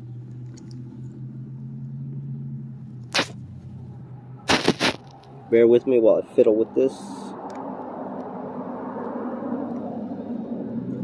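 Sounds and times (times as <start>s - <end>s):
sharp rustling scrape: 3.1s - 3.4s, 4.5s - 5.2s.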